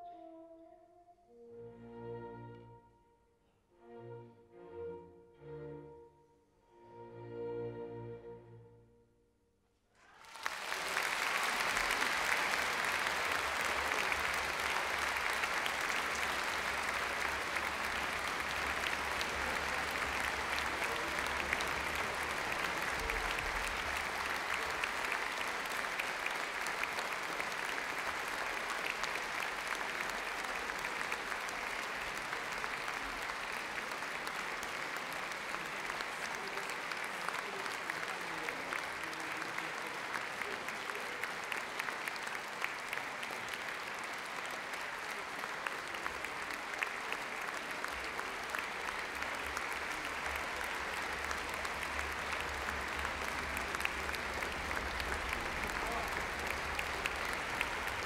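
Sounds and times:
audience applauding: 10.0 - 58.0.

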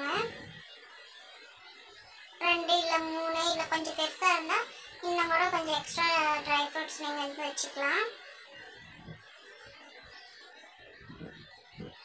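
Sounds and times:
child singing: 2.4 - 8.1.

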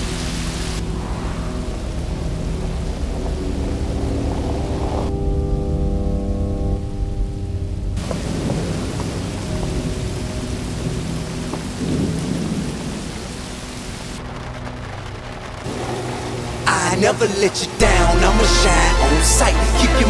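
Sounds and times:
rain hiss: 0.0 - 5.7, 8.0 - 20.0
low drone of held tones: 0.0 - 13.0
rolling thunder: 0.7 - 5.8, 7.9 - 17.5.

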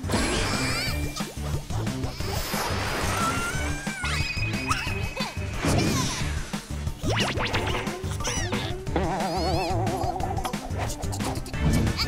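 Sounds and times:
whistling swoops: 2.2 - 5.6
background music with steady beat: 3.6 - 12.0.

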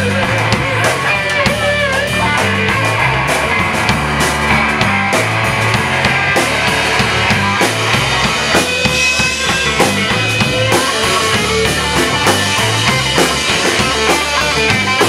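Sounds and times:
bass line: 0.0 - 15.0
drum kit beat: 0.0 - 15.0
picked electric guitar: 0.0 - 15.0.

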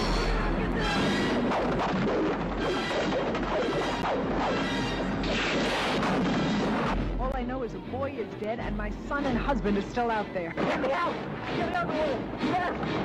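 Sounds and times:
loud film trailer music: 0.0 - 13.0.

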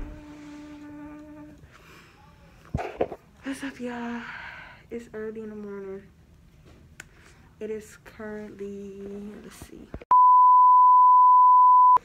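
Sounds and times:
high electronic bleep: 10.1 - 12.0.

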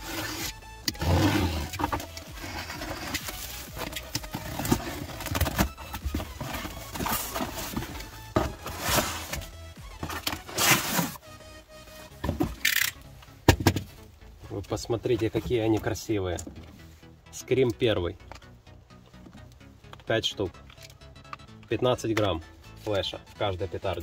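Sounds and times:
background music: 0.0 - 24.0.

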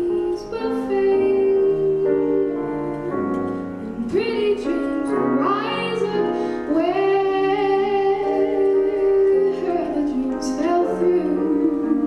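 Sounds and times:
piano accompaniment: 0.0 - 12.0
woman singing jazz ballad: 0.0 - 12.0.

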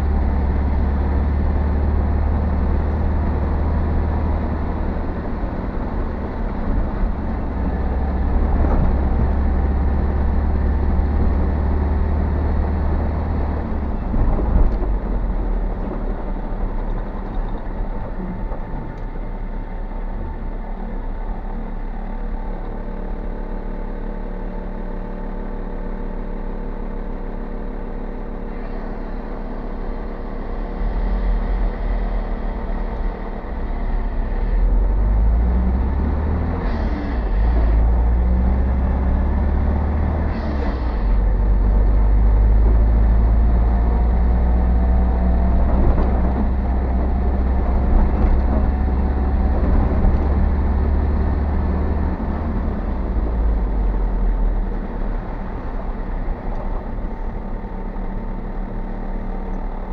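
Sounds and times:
car engine and tyre rumble: 0.0 - 59.9.

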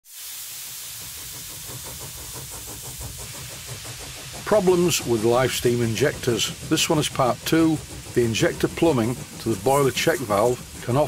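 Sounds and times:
steam hissing: 0.0 - 11.0
fast regular pulsing: 1.0 - 11.0.

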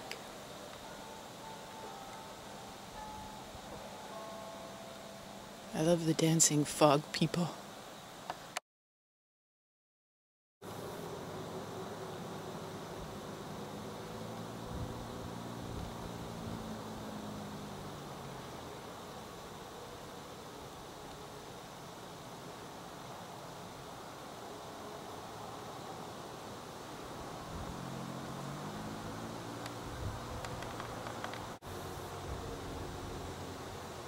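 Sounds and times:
distant motor hum: 0.0 - 7.0, 10.7 - 34.0
steady hiss: 0.0 - 8.6, 10.6 - 34.0.

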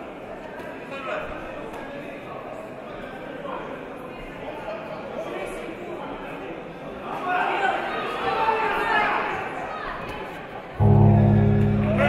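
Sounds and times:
crowd shouting in a hall: 6.8 - 12.0.

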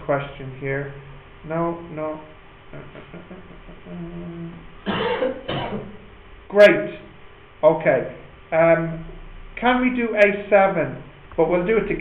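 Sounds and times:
man coughing: 4.8 - 6.0.

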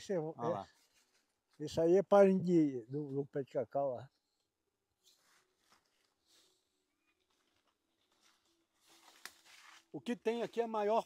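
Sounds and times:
faint rustles: 5.0 - 9.9.

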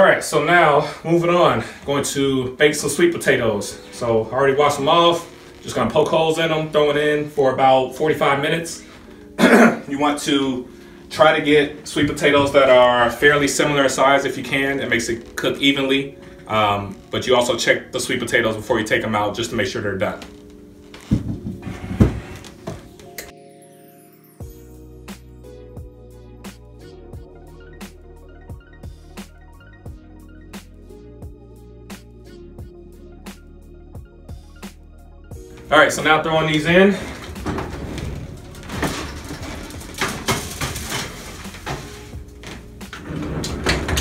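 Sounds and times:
quiet background music: 0.0 - 44.0
oven door opening: 10.1 - 17.3, 20.1 - 23.3, 35.5 - 44.0
metal baking sheet clattering: 35.8 - 44.0.

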